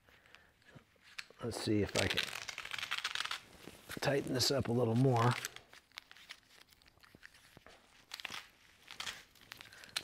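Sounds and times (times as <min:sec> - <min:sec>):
strap rustling and clicking: 0:00.0 - 0:10.0.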